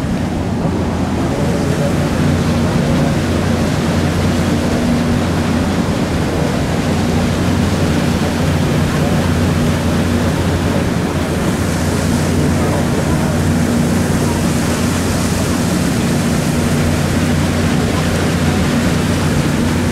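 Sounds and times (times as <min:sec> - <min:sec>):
low engine hum: 0:00.0 - 0:19.9
paddlewheel churning water: 0:00.0 - 0:19.9.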